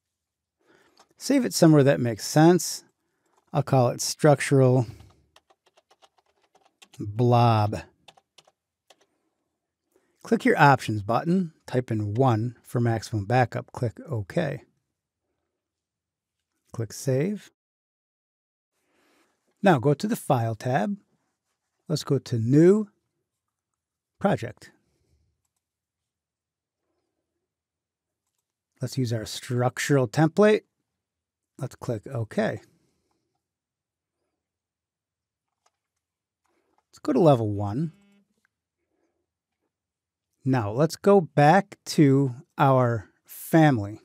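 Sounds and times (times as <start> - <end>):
man speaking: 1.2 - 2.8, 3.5 - 5.0, 7.0 - 7.9, 10.3 - 14.6, 16.8 - 17.5, 19.6 - 21.0, 21.9 - 22.9, 24.2 - 24.7, 28.8 - 30.6, 31.6 - 32.6, 37.0 - 38.0, 40.4 - 44.0
computer keyboard typing: 4.8 - 7.2, 7.8 - 9.1
computer mouse clicks: 8.1 - 9.1, 35.5 - 36.9.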